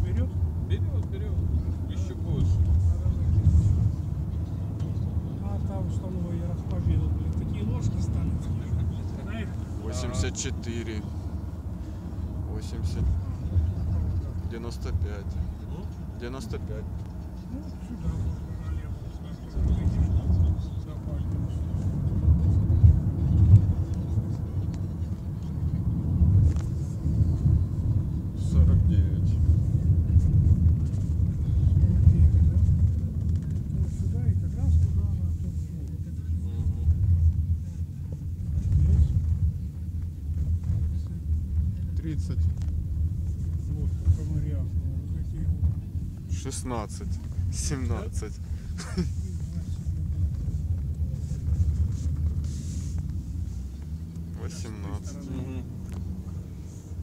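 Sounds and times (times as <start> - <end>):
car rumble from inside cabin: 0.0 - 57.0.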